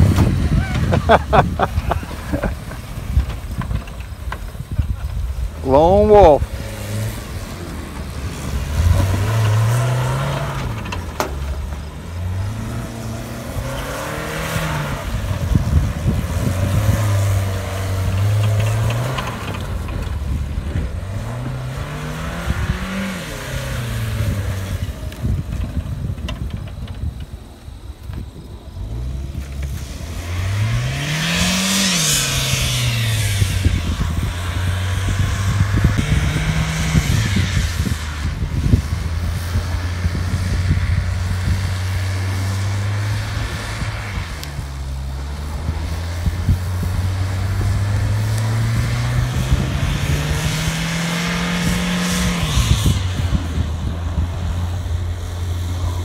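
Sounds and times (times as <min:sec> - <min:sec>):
car engine revving: 0:00.0 - 0:56.0
tyres spinning in burnout: 0:00.0 - 0:56.0.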